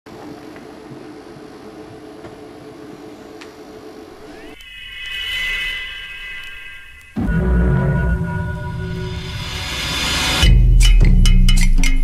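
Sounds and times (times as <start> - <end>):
theatre hum and hiss: 0.1 - 4.6
high electronic tone sliding up: 4.2 - 10.4.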